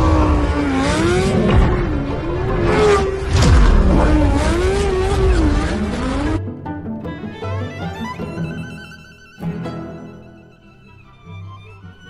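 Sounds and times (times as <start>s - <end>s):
car engine revving: 0.0s - 6.4s.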